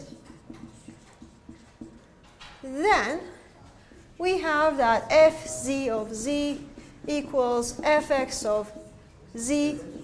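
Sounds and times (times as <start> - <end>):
whiteboard marker squeaking: 0.0 - 2.6.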